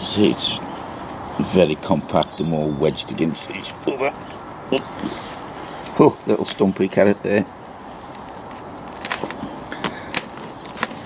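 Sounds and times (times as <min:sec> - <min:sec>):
leaves rustling: 0:00.0 - 0:11.0
roots snapping: 0:08.1 - 0:11.0.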